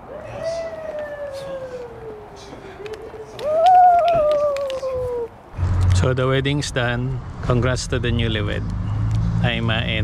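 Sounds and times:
long falling cry: 0.0 - 5.4.

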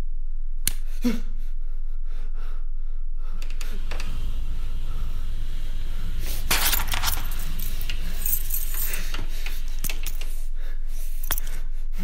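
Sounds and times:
steady low hum: 0.0 - 12.0
light jingling and rustling: 6.5 - 10.3.

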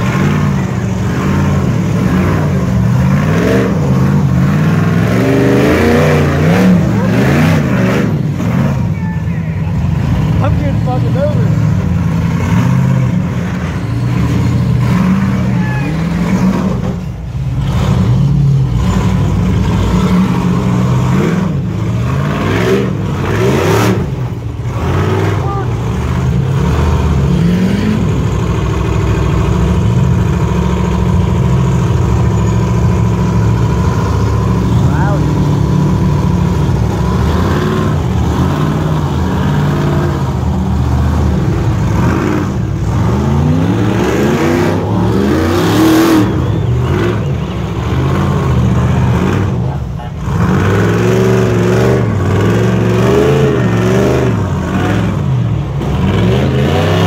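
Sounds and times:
car engine revving hard: 0.0 - 8.8, 10.3 - 57.0.

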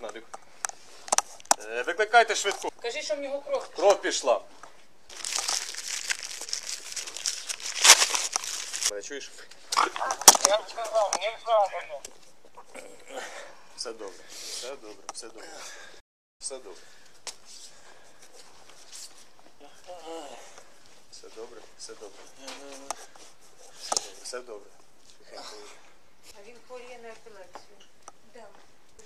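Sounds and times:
tissue and bedding rustling: 5.1 - 8.9.

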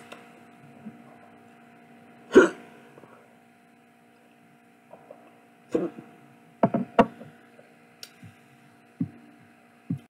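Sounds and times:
person hiccuping: 2.3 - 2.6.

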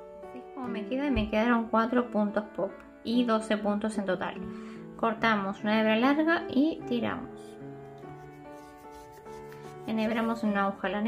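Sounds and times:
soft background music: 0.0 - 11.0
yarn rubbing through crochet: 7.4 - 10.5.

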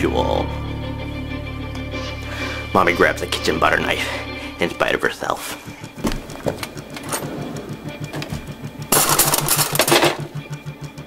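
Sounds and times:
eerie music with low pulse: 0.0 - 11.0
wooden drawer sliding open: 6.0 - 8.5.

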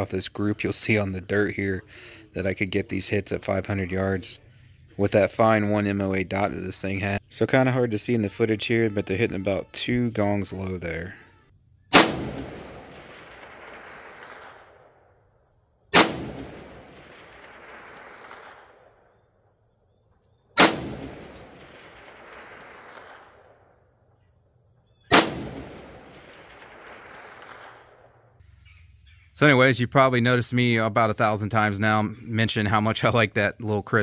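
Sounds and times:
rifle shots with rolling echo: 11.9 - 15.2, 15.9 - 19.4, 20.6 - 24.1, 25.0 - 28.4.

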